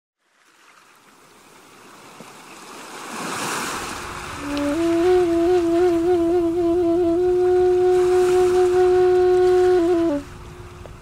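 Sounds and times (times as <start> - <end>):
ocean surf washing in: 1.6 - 11.0
flute melody: 4.4 - 10.8.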